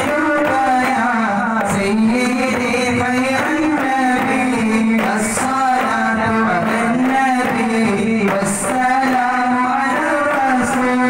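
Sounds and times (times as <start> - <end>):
frame drums: 0.0 - 11.0.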